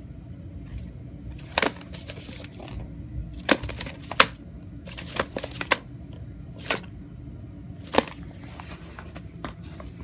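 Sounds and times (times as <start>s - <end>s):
tape case clicks and rustles: 1.4s - 2.8s, 3.4s - 5.9s, 7.8s - 9.9s.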